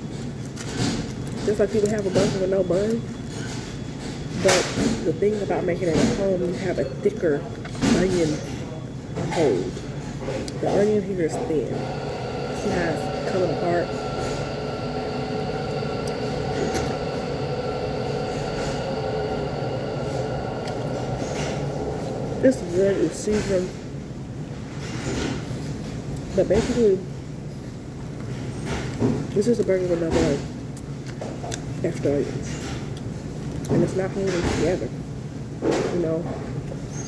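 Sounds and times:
mechanical equipment hum: 0.0 - 37.0
room noise: 0.0 - 37.0.

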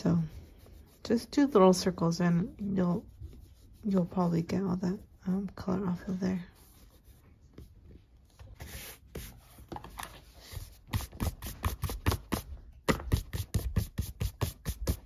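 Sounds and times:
eraser rubbing on paper: 2.6 - 4.5, 6.0 - 7.3, 8.6 - 9.6
hand brushing paper: 5.9 - 15.0.

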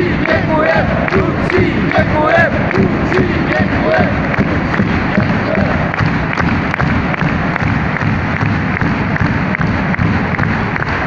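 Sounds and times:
crowd chanting: 0.0 - 10.3
evenly spaced beats: 0.0 - 11.0.

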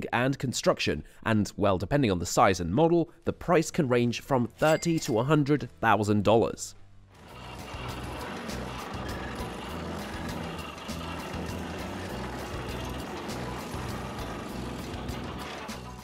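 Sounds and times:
background music: 2.6 - 16.0.

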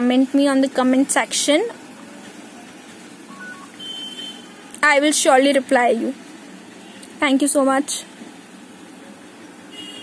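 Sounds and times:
faint high-pitched tone: 3.3 - 3.8.

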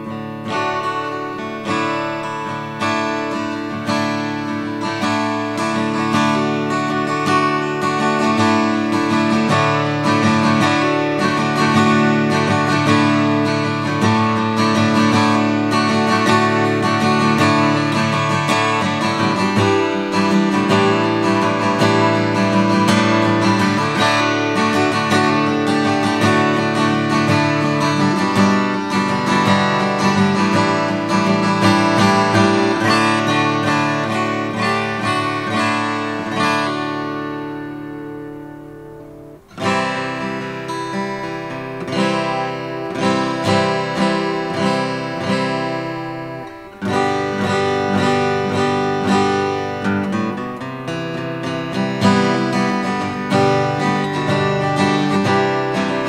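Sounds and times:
acoustic guitar chords: 0.0 - 56.0.

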